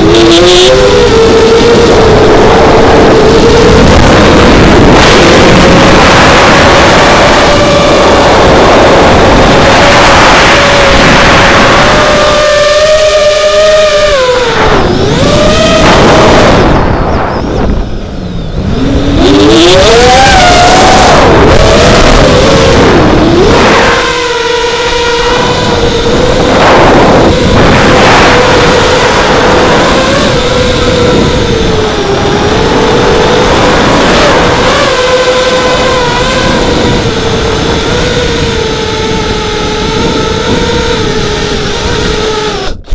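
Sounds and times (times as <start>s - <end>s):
quadcopter motors whining: 0.0s - 42.9s
wind noise: 0.0s - 42.9s.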